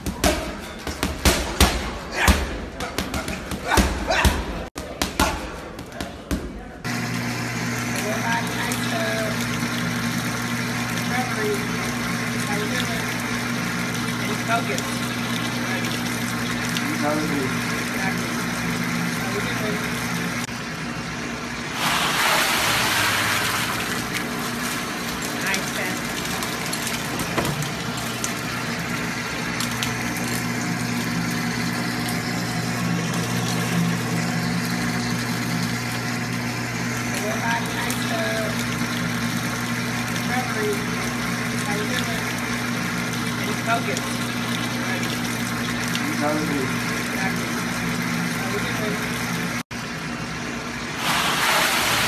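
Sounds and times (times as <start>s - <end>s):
water pump humming: 0.0s - 52.0s
water jets churning: 6.8s - 52.0s.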